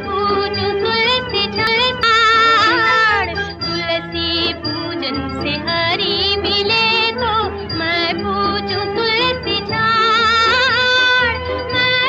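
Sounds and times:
low instrumental accompaniment: 0.0 - 12.0
person singing ornamented melody: 0.0 - 12.0.

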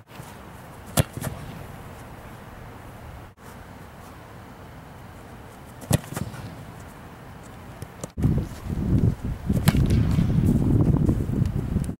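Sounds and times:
foot kicking a football: 0.1 - 1.7, 5.8 - 6.9, 9.5 - 11.1
wind buffeting microphone: 8.2 - 12.0.

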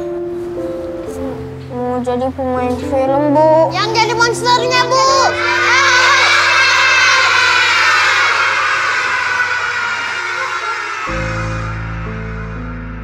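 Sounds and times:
children laughing and shouting: 3.9 - 12.0.

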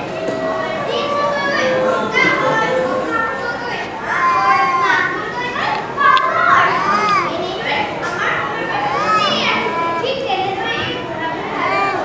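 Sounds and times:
high-pitched voices calling out: 0.0 - 12.0.

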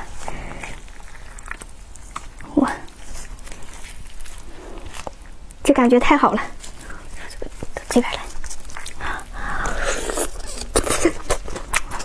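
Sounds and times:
wet sticky clicks of handling meat: 0.6 - 5.6.

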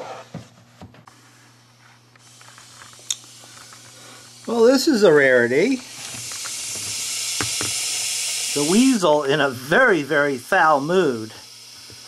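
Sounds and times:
snake hissing: 3.1 - 11.9.

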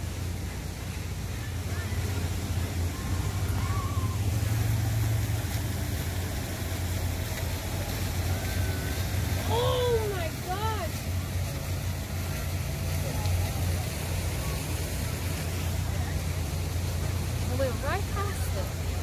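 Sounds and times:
road traffic rumble: 0.0 - 19.0
rising-and-falling whoops: 2.9 - 4.8.

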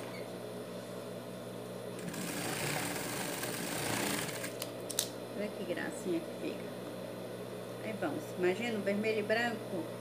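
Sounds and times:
sewing machine running: 2.0 - 4.6.

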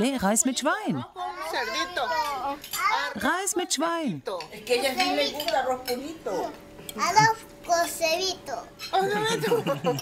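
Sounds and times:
small child speaking: 1.3 - 3.2, 7.0 - 8.9.

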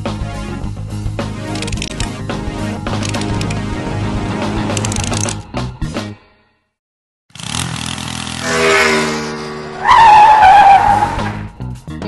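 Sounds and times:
vehicle engine revving: 7.3 - 11.5
tyre screech: 8.4 - 11.5.

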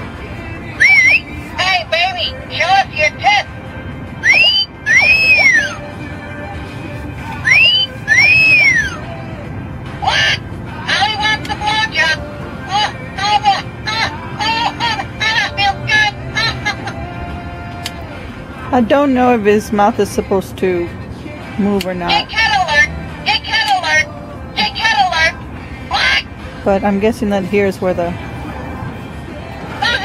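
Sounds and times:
toy parrot whistles: 0.8 - 1.3, 4.2 - 5.8, 7.4 - 9.0
toy parrot squeaky chatter: 4.2 - 5.8, 7.5 - 9.0.

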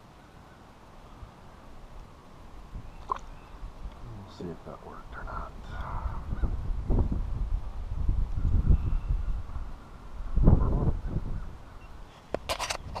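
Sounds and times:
camera handling noise: 12.3 - 13.0.

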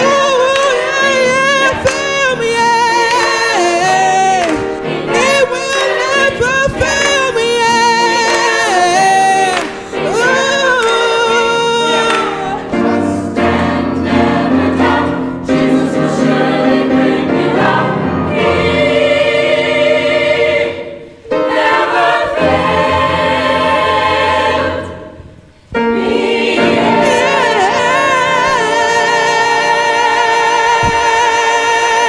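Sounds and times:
choir singing gospel: 0.0 - 32.0.

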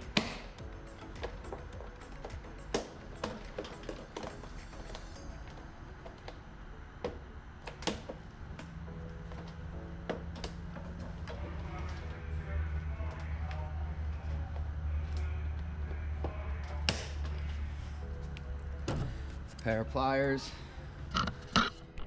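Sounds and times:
faint background music: 0.0 - 22.0
low steady hum: 0.0 - 22.0.

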